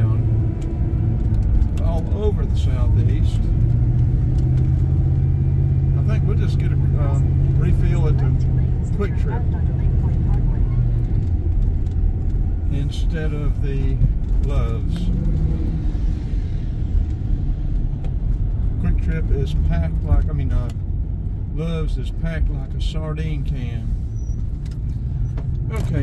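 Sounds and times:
car engine and road rumble: 0:00.0 - 0:26.0.

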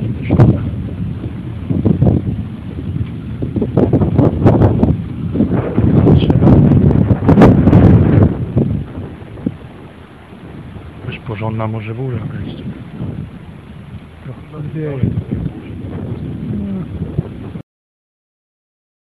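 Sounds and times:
gusty wind buffeting microphone: 0:00.0 - 0:17.6.

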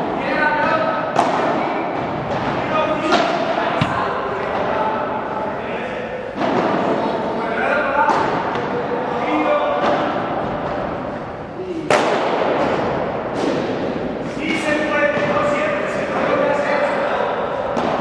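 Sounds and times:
paddle hitting ball: 0:01.1 - 0:04.8
ball bouncing: 0:03.1 - 0:04.7.

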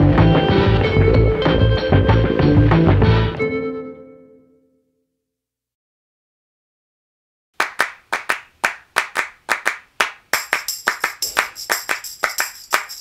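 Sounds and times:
rhythmic hand-clap beat: 0:00.0 - 0:03.4, 0:07.6 - 0:13.0
jingling tambourine: 0:10.4 - 0:13.0.

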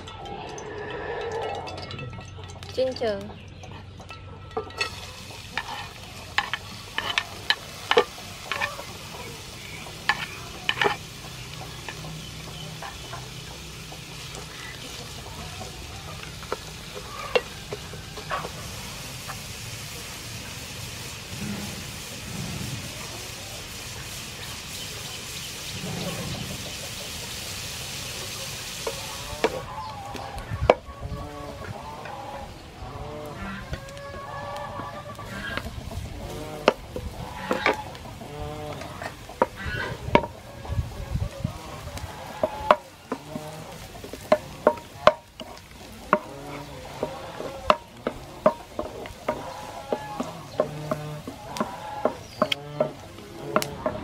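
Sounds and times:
ginger sizzling in hot oil: 0:04.4 - 0:54.0
spatula knocking in pan: 0:44.1 - 0:46.3, 0:47.0 - 0:54.0.

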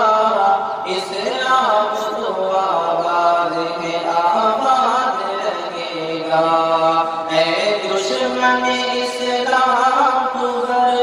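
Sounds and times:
man singing long held notes: 0:00.0 - 0:11.0.

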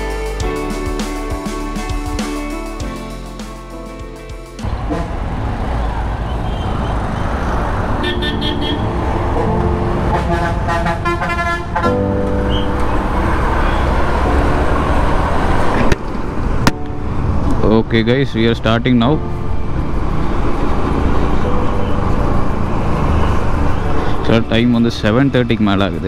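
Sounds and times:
road noise: 0:00.0 - 0:26.0
motorcycle engine: 0:04.6 - 0:16.6
vehicle horns honking: 0:04.7 - 0:05.5, 0:06.2 - 0:07.0, 0:08.0 - 0:09.0, 0:10.0 - 0:14.1.

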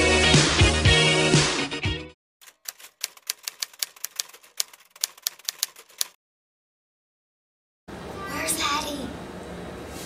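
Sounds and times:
typewriter keys clacking: 0:02.4 - 0:06.2.

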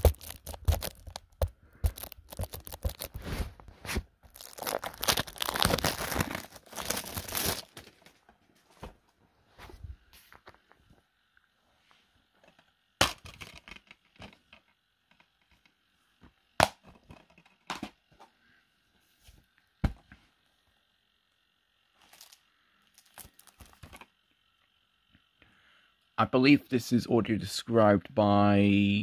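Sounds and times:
crinkling and rustling: 0:00.0 - 0:10.9, 0:22.0 - 0:24.1.

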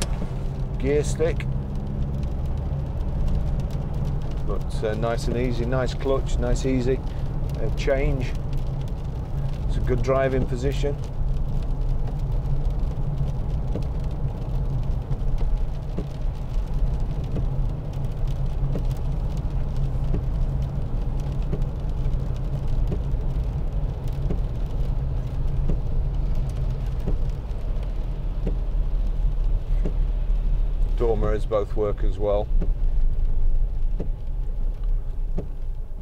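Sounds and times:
tyre noise on wet road: 0:00.0 - 0:36.0.

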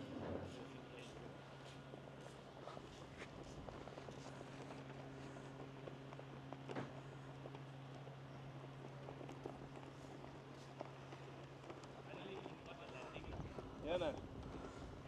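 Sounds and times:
distant propeller plane engine drone: 0:00.0 - 0:15.0.

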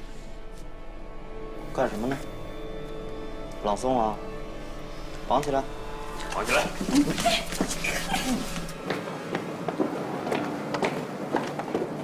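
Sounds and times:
background music: 0:00.0 - 0:12.0
footsteps: 0:06.2 - 0:12.0
scuffling: 0:06.3 - 0:09.0.

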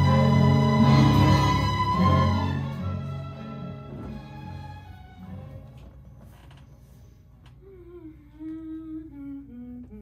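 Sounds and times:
person humming a tune: 0:07.6 - 0:10.0.

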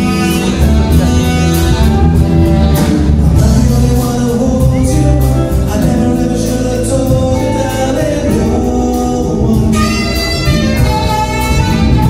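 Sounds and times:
saxophone: 0:00.0 - 0:03.7, 0:07.0 - 0:12.0
drums: 0:00.0 - 0:12.0
electric bass: 0:00.0 - 0:12.0
electric guitars: 0:00.0 - 0:12.0
person singing: 0:00.0 - 0:12.0.

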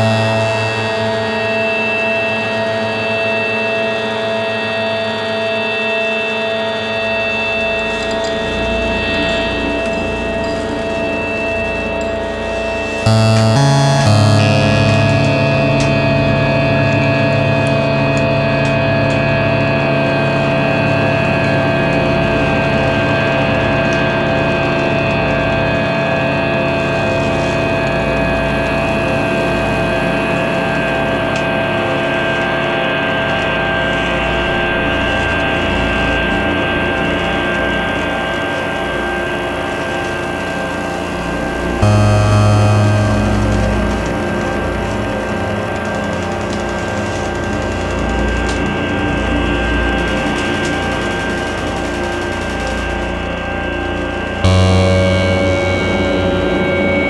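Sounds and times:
loud low tone: 0:00.0 - 0:01.8, 0:12.8 - 0:16.7, 0:41.8 - 0:45.8, 0:54.4 - 0:57.0
synthesizer drone: 0:00.0 - 0:03.6, 0:07.2 - 0:25.0, 0:40.4 - 0:57.0
faint crackling clicks: 0:41.9 - 0:48.9, 0:50.0 - 0:53.2.

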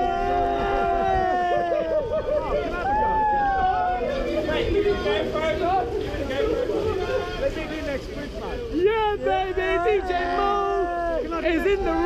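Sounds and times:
men yelling together: 0:00.0 - 0:07.6, 0:08.7 - 0:12.0.

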